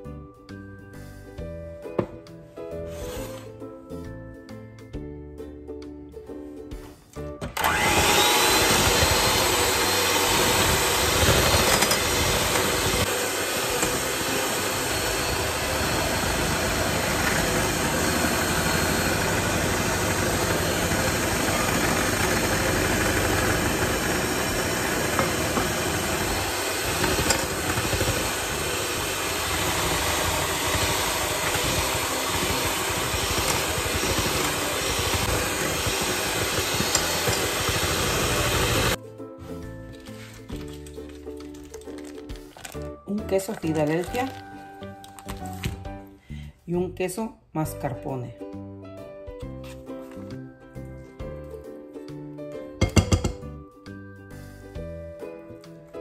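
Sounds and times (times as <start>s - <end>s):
electric hand mixer whipping liquid: 7.6s - 39.0s.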